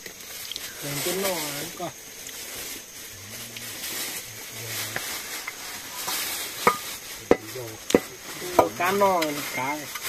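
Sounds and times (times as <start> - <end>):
dry meat rustling and crackling: 0.0 - 10.0.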